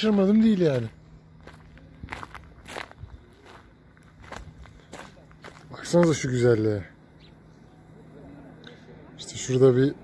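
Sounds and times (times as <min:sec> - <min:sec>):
footsteps on dry leaves: 0:00.0 - 0:06.3.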